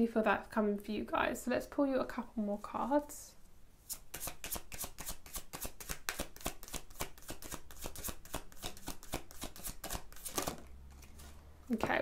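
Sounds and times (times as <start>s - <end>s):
cards being shuffled: 3.9s - 11.4s.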